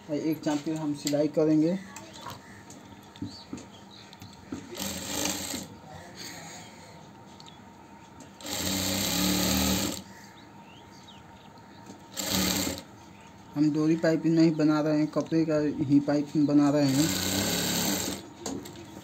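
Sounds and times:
sewing machine stitching: 4.7s - 5.7s, 8.4s - 10.0s, 12.1s - 12.8s, 16.8s - 18.3s.

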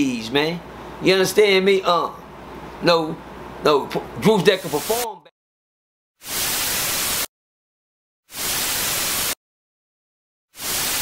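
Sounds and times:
television static hiss: 4.4s - 5.2s, 6.3s - 7.3s, 8.4s - 9.4s, 10.6s - 11.0s.

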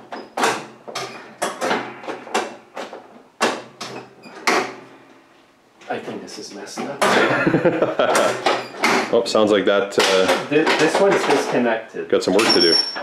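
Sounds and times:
metal clacks and rattles: 6.8s - 9.2s, 10.0s - 11.7s.

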